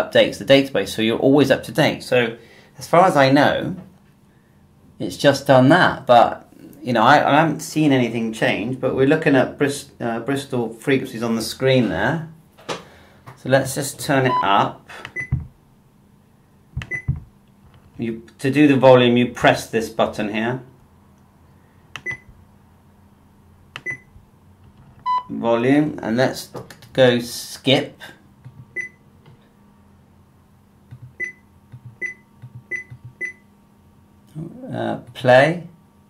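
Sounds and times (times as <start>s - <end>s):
scanner key-press beeps: 15.1s - 15.4s, 16.8s - 17.2s, 22.0s - 22.3s, 23.8s - 24.1s, 25.0s - 25.3s, 28.7s - 29.0s, 31.0s - 33.4s.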